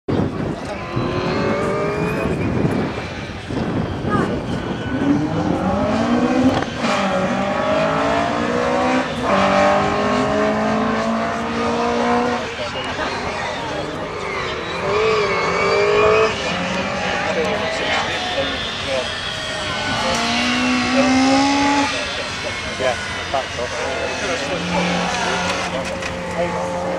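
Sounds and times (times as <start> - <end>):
race car engine revving: 0.2 - 26.9.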